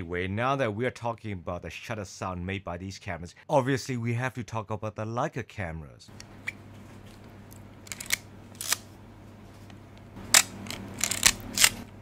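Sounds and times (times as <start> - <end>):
camera controls clicking: 10.3 - 11.8
loud camera shutter click: 10.3 - 11.9.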